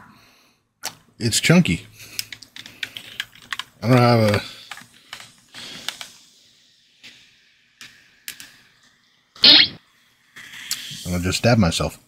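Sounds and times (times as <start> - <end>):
short loud vocal noise: 9.4 - 9.8
soda fizzing: 9.4 - 9.8.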